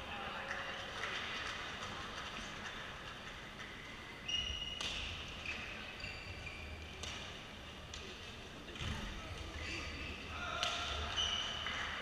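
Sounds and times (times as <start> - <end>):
low hum of sports hall: 0.0 - 12.0
court shoes squeaking: 3.8 - 8.1, 8.7 - 12.0.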